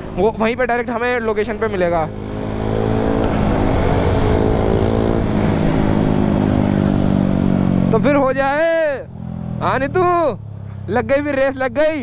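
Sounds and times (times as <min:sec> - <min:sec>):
motorcycle engine accelerating: 0:00.0 - 0:12.0
wind rushing over microphone: 0:02.1 - 0:08.2.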